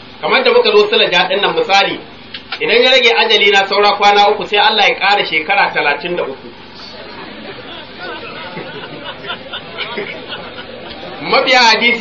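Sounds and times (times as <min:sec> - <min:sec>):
chatter of several voices: 0:06.6 - 0:12.0.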